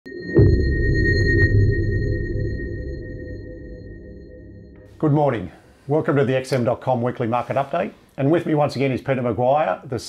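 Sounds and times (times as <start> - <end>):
high ringing tone: 0.1 - 4.9
deep low hit: 0.4 - 5.0.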